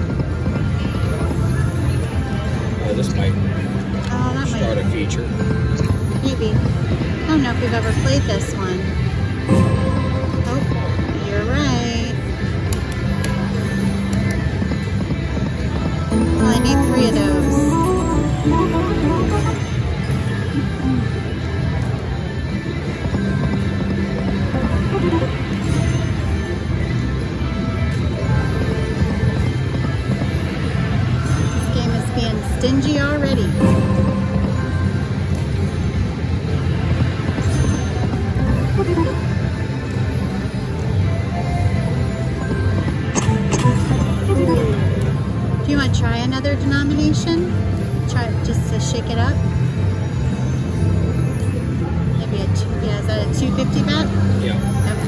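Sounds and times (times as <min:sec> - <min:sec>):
slot machine spin music: 0:09.5 - 0:11.0, 0:16.1 - 0:21.0, 0:24.4 - 0:26.7, 0:33.5 - 0:36.5, 0:37.4 - 0:39.6, 0:40.4 - 0:45.6
slot machine reels spinning: 0:16.1 - 0:19.8
casino noise: 0:16.1 - 0:21.0, 0:23.4 - 0:26.4, 0:33.5 - 0:39.5, 0:42.3 - 0:45.4.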